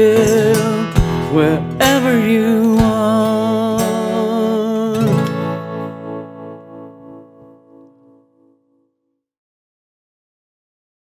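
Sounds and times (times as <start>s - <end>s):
acoustic guitar chord ringing: 0.0s - 9.2s.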